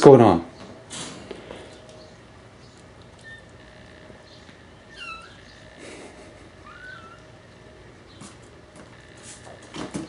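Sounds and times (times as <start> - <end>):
kitten mewing: 4.9 - 5.8, 6.6 - 7.3
kittens scuffling on carpet: 8.1 - 10.0.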